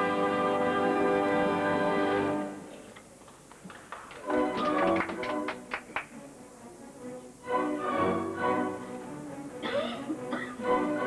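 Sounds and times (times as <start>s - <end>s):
orchestra playing: 0.0s - 2.7s, 4.2s - 11.0s.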